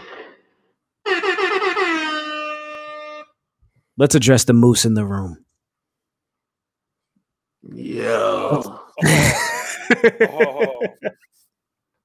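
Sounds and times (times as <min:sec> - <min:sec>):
air horn blast: 0:01.0 - 0:03.4.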